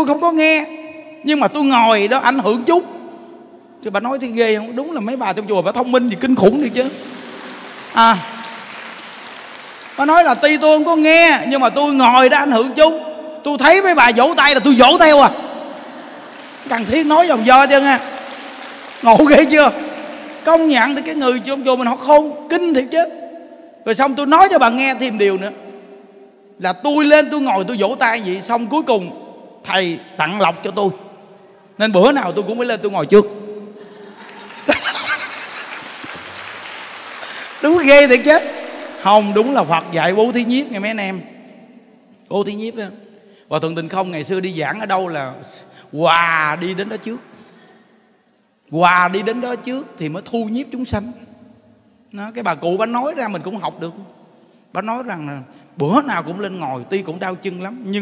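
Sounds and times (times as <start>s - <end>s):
audience applause: 6.6s - 10.5s, 15.7s - 21.2s, 33.8s - 39.8s
audience laughing: 33.8s - 36.5s.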